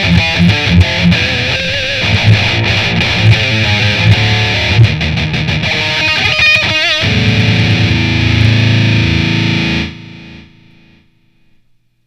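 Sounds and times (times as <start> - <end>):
distorted electric guitar low notes: 0.0 - 11.8.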